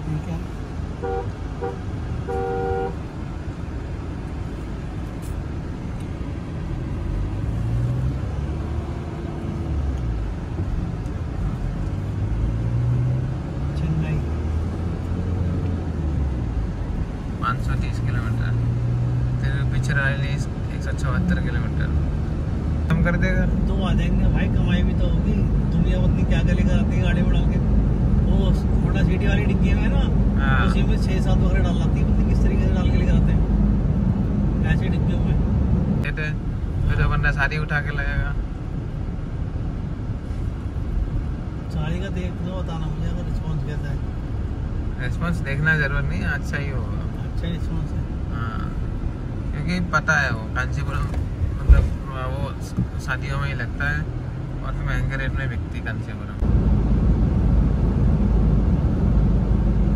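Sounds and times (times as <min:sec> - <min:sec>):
car engine: 0:00.0 - 0:59.9
road rumble: 0:00.0 - 0:59.9
vehicle horn beeps: 0:01.0 - 0:03.0.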